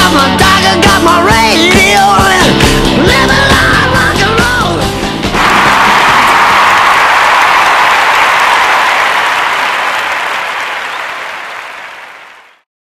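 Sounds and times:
audience applause: 0:05.4 - 0:12.6.

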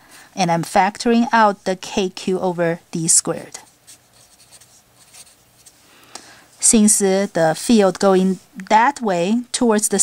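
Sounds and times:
marker scratching on paper: 0:03.5 - 0:05.8.

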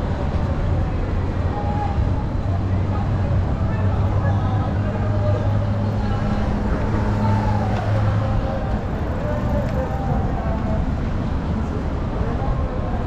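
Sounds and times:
faint people talking: 0:00.0 - 0:13.0
vehicles passing: 0:00.0 - 0:13.0.

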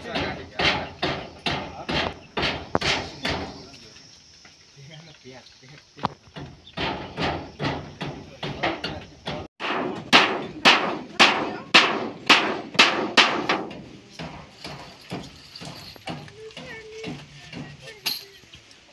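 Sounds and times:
voices: 0:00.0 - 0:09.5, 0:10.4 - 0:12.6, 0:13.6 - 0:18.9
light scattered knocks: 0:05.7 - 0:09.5.

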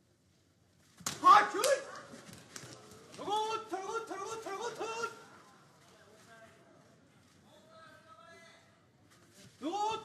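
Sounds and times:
loud shouting: 0:01.1 - 0:02.0, 0:03.2 - 0:05.3.

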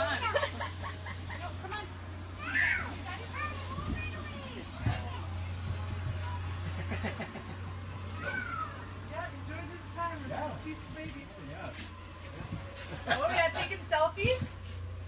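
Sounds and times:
child babbling and squealing: 0:02.4 - 0:03.0, 0:08.2 - 0:08.9.

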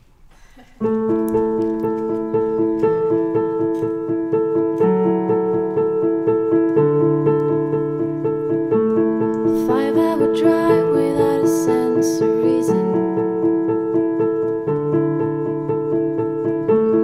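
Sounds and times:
piano playing repeated chords: 0:00.8 - 0:17.0.

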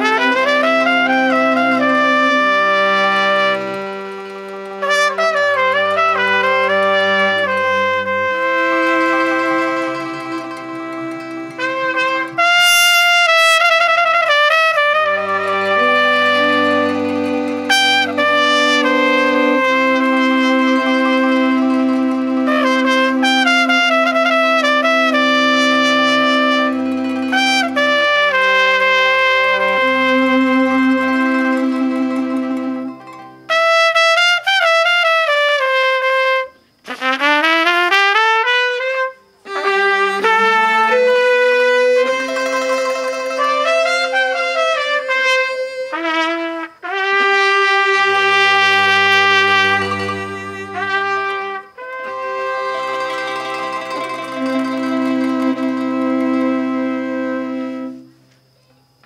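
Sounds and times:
string ensemble holding notes: 0:00.0 - 0:33.8, 0:39.4 - 0:58.1
trumpet playing slow melody: 0:00.0 - 0:58.6.

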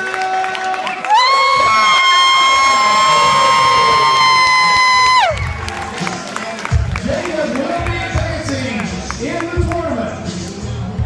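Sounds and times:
crowd cheering: 0:00.0 - 0:09.4.

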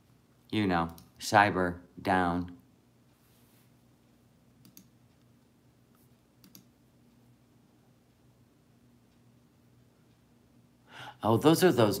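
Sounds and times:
low steady hum: 0:00.0 - 0:12.0
faint clicks: 0:04.6 - 0:05.3, 0:05.9 - 0:07.2.

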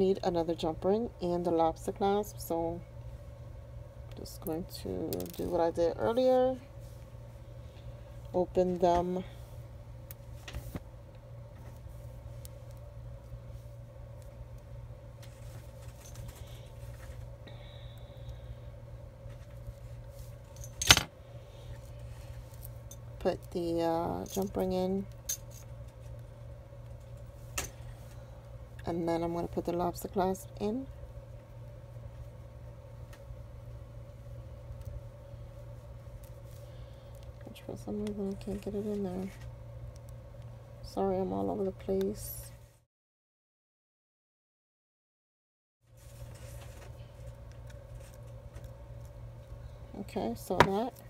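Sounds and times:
low background hum: 0:00.0 - 0:42.9, 0:45.8 - 0:51.0.

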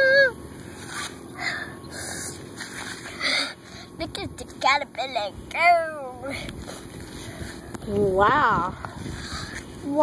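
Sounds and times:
person breathing puffs: 0:08.8 - 0:09.8.

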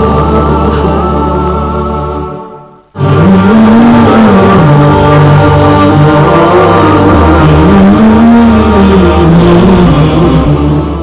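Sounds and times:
low drone: 0:00.0 - 0:11.0
man singing long notes: 0:00.0 - 0:11.0.

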